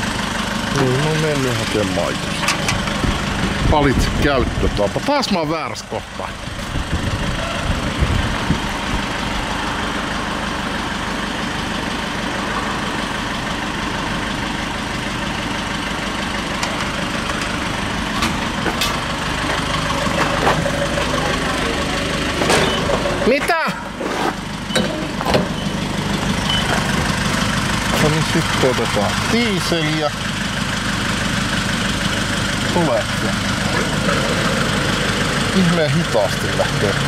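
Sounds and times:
vehicle engine idling: 0.0s - 37.0s.

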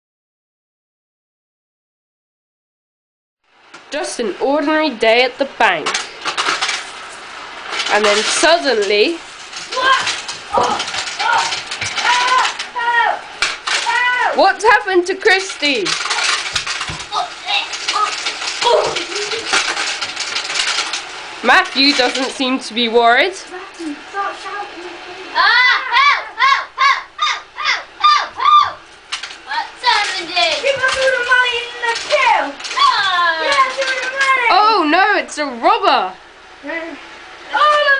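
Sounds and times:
chicken-like squawks: 25.5s - 28.8s.

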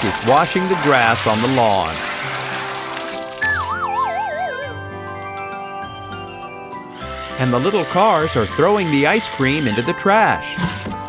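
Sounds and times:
hissing water spray: 0.0s - 3.8s, 7.0s - 10.9s
background music: 0.0s - 11.0s
wobbling falling cartoon effect: 3.3s - 4.8s.

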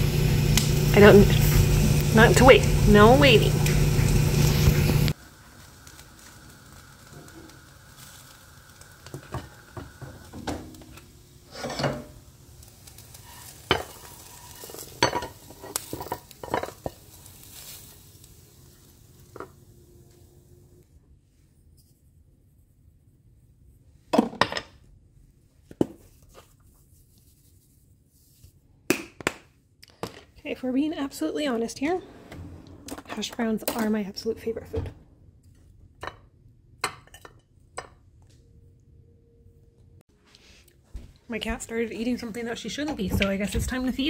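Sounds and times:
utensil scraping frying pan: 11.4s - 12.2s, 12.9s - 17.9s.

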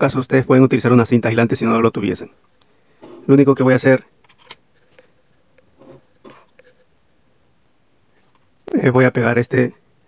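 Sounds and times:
faint handling taps and rustles: 4.2s - 7.0s.

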